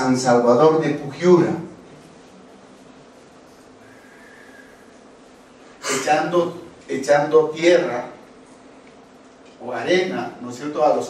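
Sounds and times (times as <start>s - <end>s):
man speaking: 0.0s - 1.8s, 5.8s - 8.2s, 9.6s - 11.0s
faint steady hum: 0.0s - 11.0s
man drawing sharp breath: 3.8s - 4.9s.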